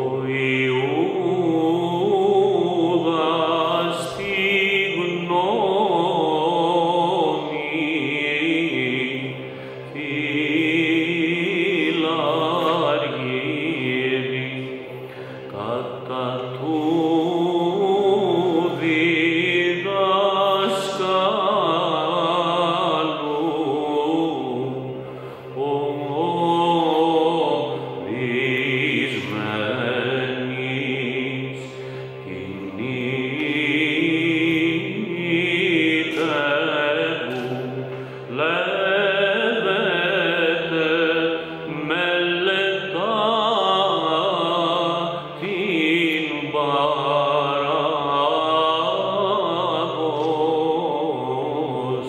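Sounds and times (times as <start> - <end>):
man chanting a hymn: 0.0 - 52.0
steady low vocal drone: 0.0 - 52.0.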